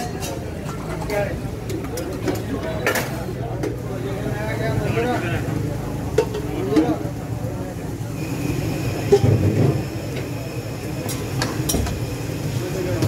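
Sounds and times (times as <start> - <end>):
background voices talking: 0.0 - 13.0.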